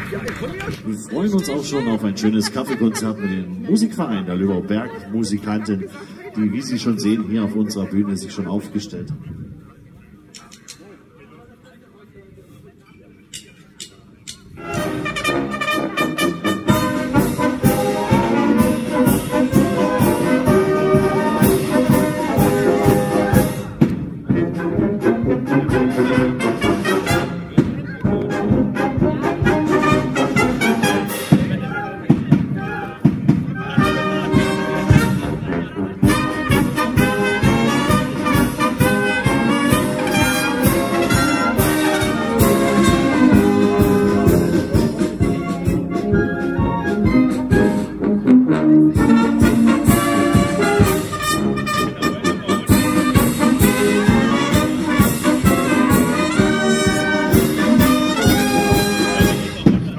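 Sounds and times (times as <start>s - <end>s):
wind band playing: 0.0s - 8.8s, 14.5s - 59.9s.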